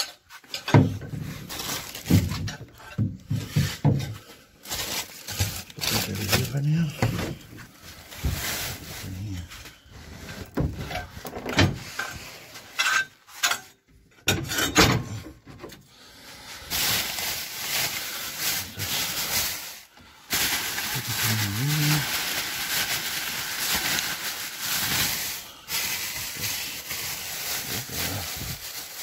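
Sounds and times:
plastic bags rustling: 0.0 - 13.6, 15.9 - 29.0.

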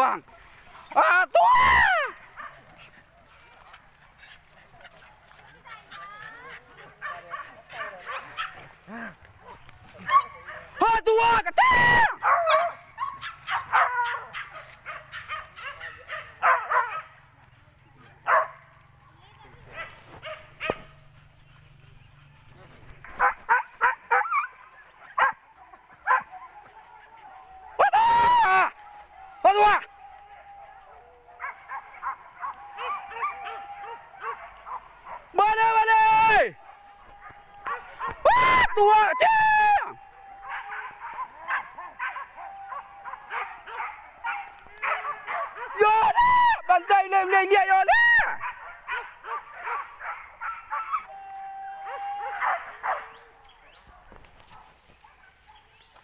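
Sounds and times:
man shouting: 0.0 - 0.2, 0.9 - 2.2, 10.0 - 12.2, 27.8 - 28.8, 29.4 - 29.9, 35.3 - 36.7, 37.7 - 40.2, 45.6 - 48.4
dogs yelping and barking: 1.7 - 10.8, 12.1 - 17.3, 18.2 - 18.6, 23.0 - 35.4, 36.6 - 39.2, 39.8 - 45.8, 48.3 - 55.8.

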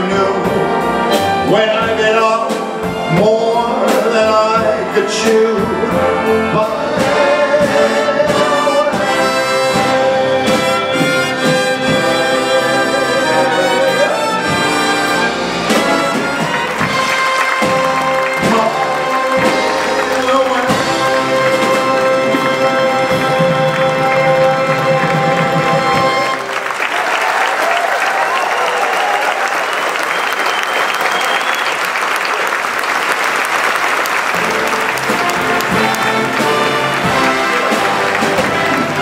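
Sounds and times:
orchestra playing: 0.0 - 39.0
audience applauding: 13.2 - 39.0
drum strikes: 13.8 - 26.4, 34.3 - 39.0.

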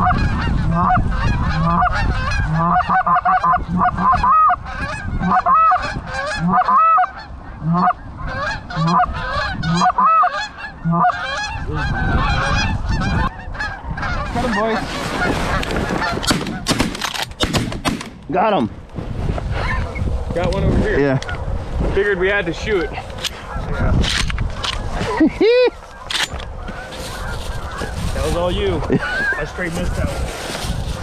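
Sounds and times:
geese honking: 0.0 - 16.7, 22.6 - 31.0
shotgun shots: 16.2 - 18.2.

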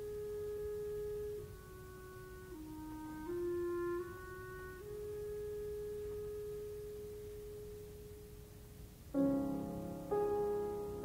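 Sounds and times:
woodwind holding soft note: 0.0 - 8.5.

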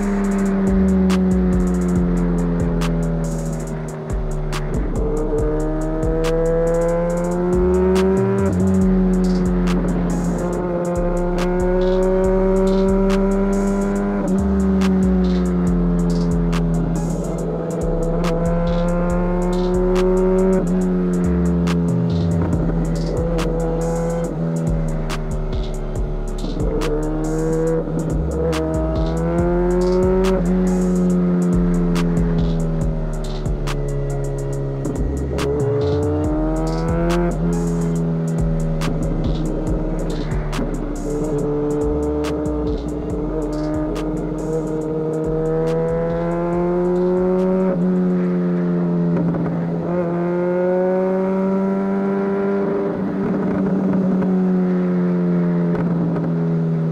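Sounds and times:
hip-hop beat with bassline: 0.0 - 48.2
motorcycle engine accelerating: 0.0 - 56.9.

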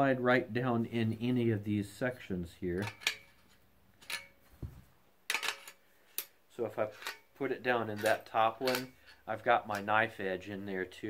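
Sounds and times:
metal shovel parts clicking: 2.8 - 4.4, 5.3 - 10.0.

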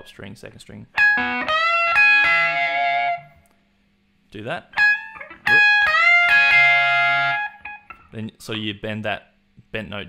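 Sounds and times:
electric guitar bent note: 4.8 - 8.1.

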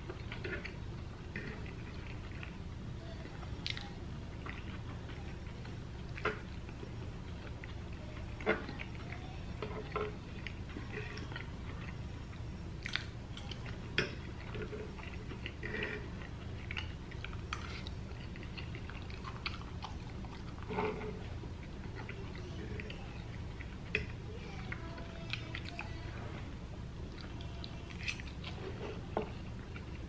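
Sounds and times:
wet chewing: 0.0 - 30.0.

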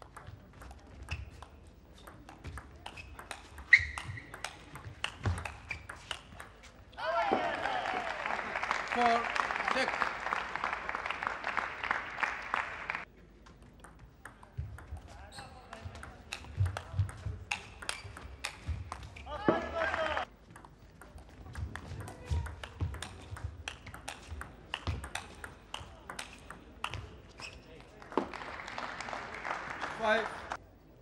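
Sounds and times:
table tennis ball clicking: 2.0 - 6.6.

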